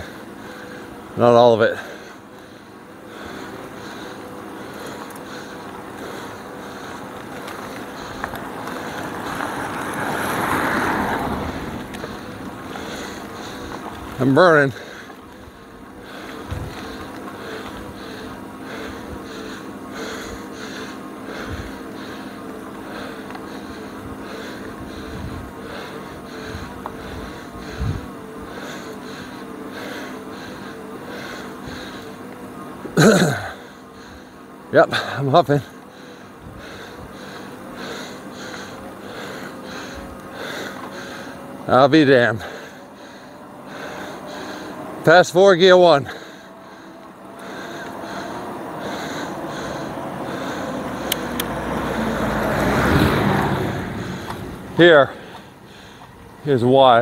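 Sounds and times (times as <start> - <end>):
cyclist breathing heavily: 0.0 - 57.0
electric hub motor whine: 0.0 - 57.0
heavy rhythmic panting: 0.0 - 57.0.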